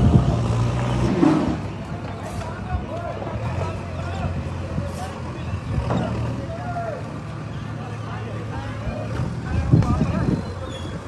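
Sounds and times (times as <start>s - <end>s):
people talking: 1.6s - 11.0s.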